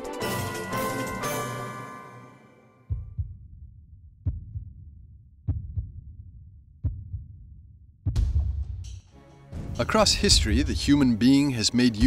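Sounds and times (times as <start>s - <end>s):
heartbeat thumps: 2.9s - 6.2s, 6.8s - 8.9s.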